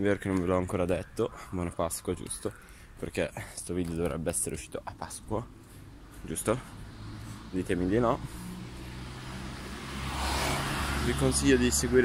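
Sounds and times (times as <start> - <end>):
passing vehicle: 5.4 - 12.0.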